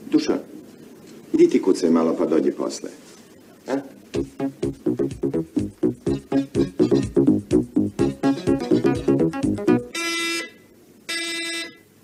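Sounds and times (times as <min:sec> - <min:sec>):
short buzzer tones: 0:09.8 - 0:11.9.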